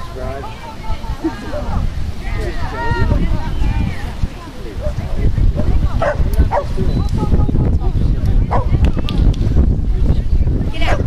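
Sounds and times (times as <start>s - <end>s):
chatter of onlookers: 0.0s - 11.0s
wind rumble on microphone: 0.0s - 11.0s
dog barking: 6.0s - 6.7s.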